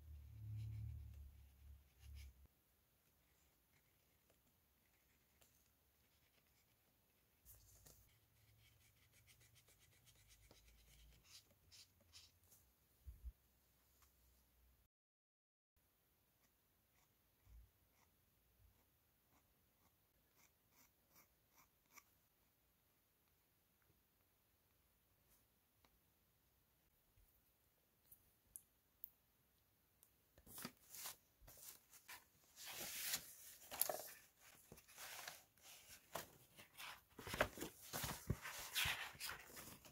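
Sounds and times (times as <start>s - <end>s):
pen scratching on paper: 16.4s - 22.1s
paper rustling: 30.4s - 39.9s.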